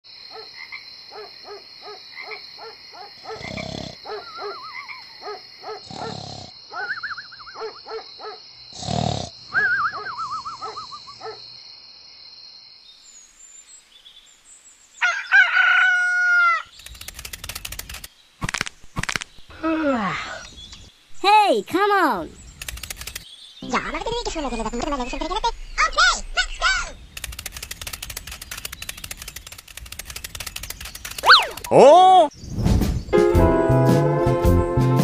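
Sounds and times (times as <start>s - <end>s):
frogs croaking: 0.1s - 13.6s, 22.1s - 31.9s
high insect trill: 0.1s - 32.4s
cartoon snore with whistle: 8.8s - 11.0s
rooster crowing: 15.0s - 16.7s.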